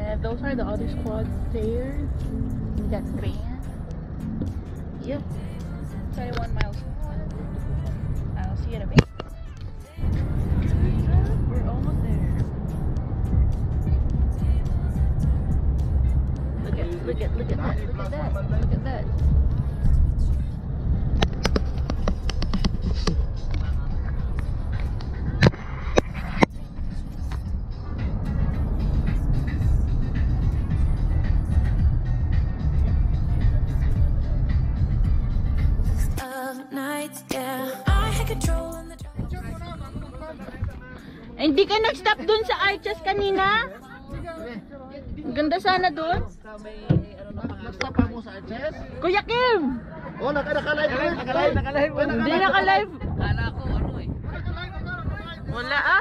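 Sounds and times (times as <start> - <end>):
voices: 0.0 - 31.7, 37.3 - 56.0
road and engine rumble: 0.0 - 36.6, 37.4 - 56.0
music playing: 0.0 - 53.0.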